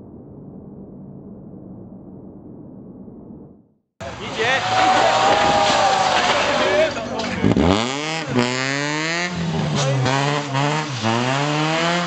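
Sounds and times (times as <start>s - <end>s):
spectators shouting: 4.0s - 8.8s
rally car engine running loud: 4.9s - 12.0s.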